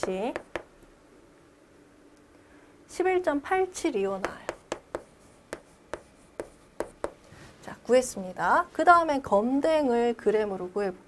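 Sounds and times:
chalk tapping and scraping on board: 0:00.0 - 0:00.7, 0:04.2 - 0:07.2.

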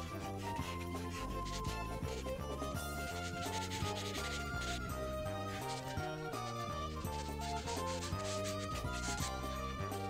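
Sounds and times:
marker nib rubbing on paper: 0:00.0 - 0:09.9
background music with a beat: 0:00.0 - 0:10.0.

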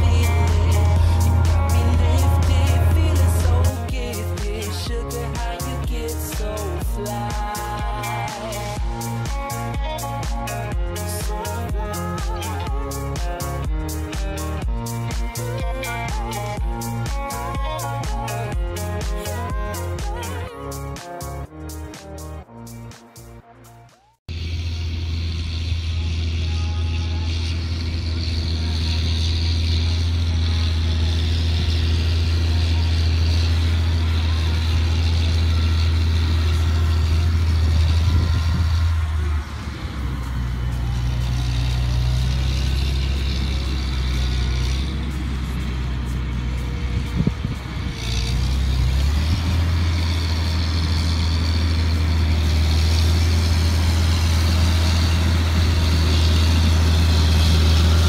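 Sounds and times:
tractor diesel engine droning: 0:00.0 - 0:22.8, 0:24.3 - 0:58.0.

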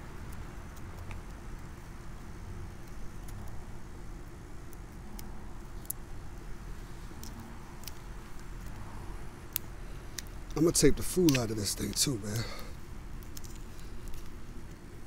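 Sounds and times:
low steady rumble: 0:00.0 - 0:15.0
faint tape clicks: 0:09.5 - 0:14.9.

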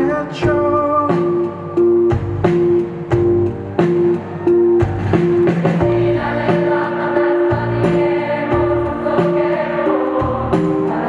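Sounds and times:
rock band playing live: 0:00.0 - 0:11.0
choir-like chord: 0:05.8 - 0:11.0.

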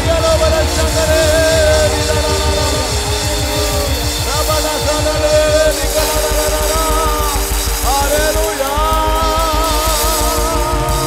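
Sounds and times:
fast drum beat: 0:00.0 - 0:11.0
man singing long notes: 0:00.0 - 0:11.0
sustained keyboard chords: 0:00.0 - 0:11.0.

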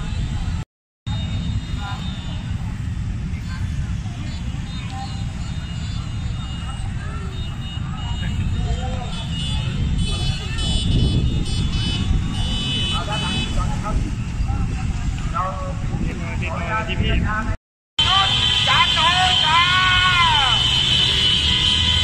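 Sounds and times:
high steady horn tones: 0:00.0 - 0:02.8, 0:04.0 - 0:13.8, 0:18.0 - 0:22.0
motorcycle engines rumbling: 0:00.0 - 0:22.0
crowd shouts: 0:18.0 - 0:21.5.

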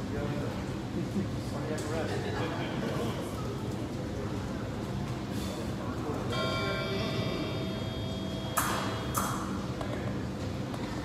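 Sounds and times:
metallic ringing tone: 0:06.3 - 0:09.1.

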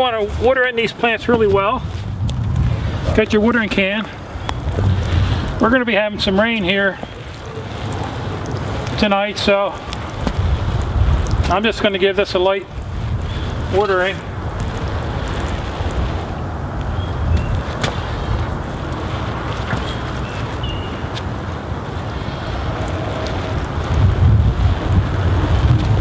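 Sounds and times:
water pattering on fabric: 0:00.0 - 0:26.0
wind rumble on microphone: 0:00.0 - 0:26.0.

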